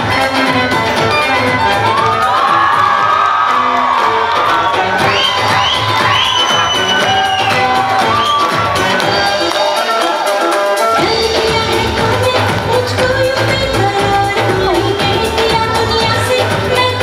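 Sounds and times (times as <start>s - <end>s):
loud dance remix music: 0.0s - 17.0s
crowd cheering and whooping: 1.1s - 11.4s.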